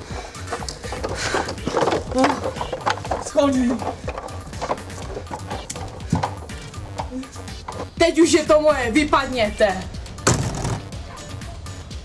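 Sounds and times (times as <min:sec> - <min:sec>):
background music: 0:00.0 - 0:12.0
front door slamming: 0:10.2 - 0:11.1.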